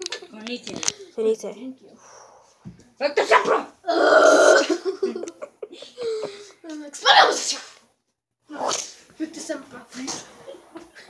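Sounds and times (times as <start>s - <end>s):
person sneezing: 7.1s - 7.8s, 8.5s - 9.0s.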